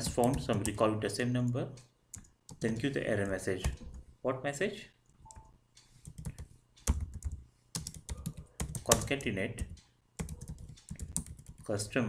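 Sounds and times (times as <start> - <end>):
keyboard keystrokes: 5.2 - 11.7.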